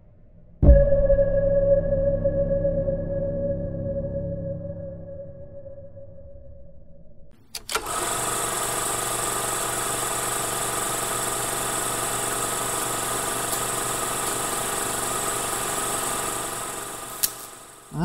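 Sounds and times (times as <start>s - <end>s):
film projector clicks: 7.5s - 17.9s
film projector whirring clatter: 7.5s - 18.0s.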